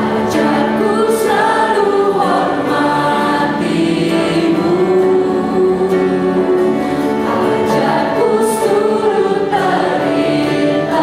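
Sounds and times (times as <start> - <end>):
group singing a slow hymn: 0.0 - 11.0
piano and keyboard: 0.0 - 11.0.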